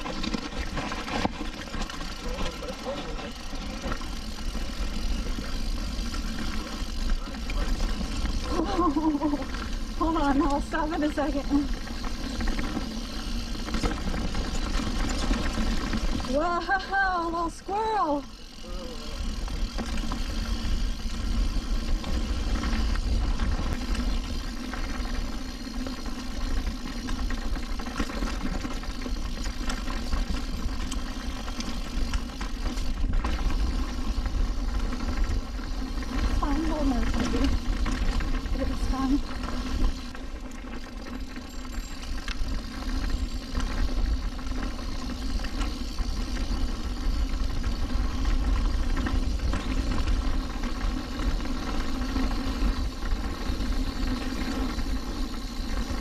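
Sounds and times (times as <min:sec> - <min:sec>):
bike humming and rattling: 0:00.0 - 0:56.0
wind rumble on camera: 0:41.9 - 0:56.0.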